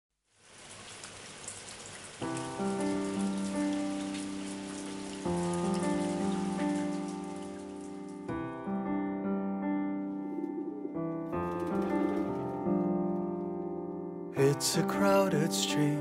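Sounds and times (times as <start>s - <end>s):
steady rain: 0.2s - 8.3s
piano chords: 2.2s - 16.0s.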